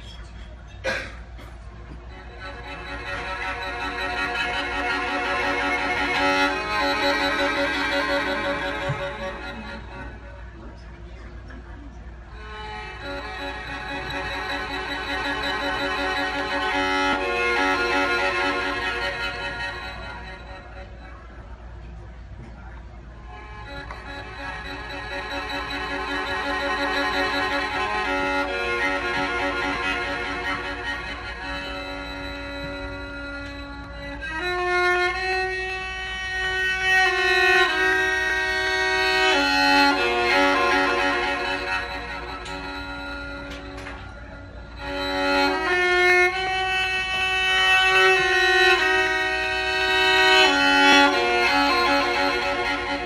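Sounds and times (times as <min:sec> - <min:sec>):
solo violin playing: 0:01.8 - 0:11.3, 0:11.9 - 0:22.2, 0:22.8 - 0:53.0.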